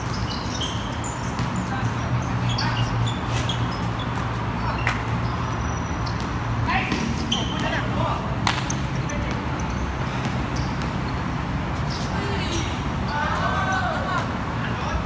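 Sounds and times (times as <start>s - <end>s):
low rumble of traffic: 0.0s - 15.0s
basketball bouncing on concrete: 1.2s - 2.1s, 6.1s - 11.4s
players shouting: 12.1s - 15.0s.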